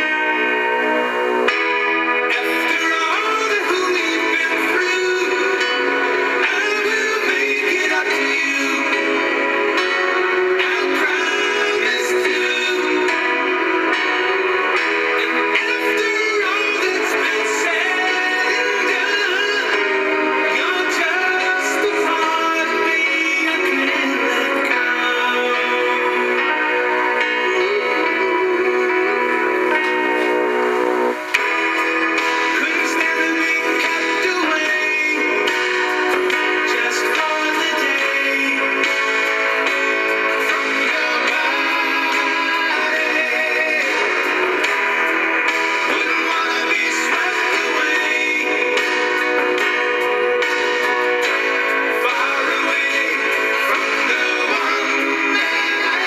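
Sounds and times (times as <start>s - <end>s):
pop song on car radio: 0.0s - 56.0s.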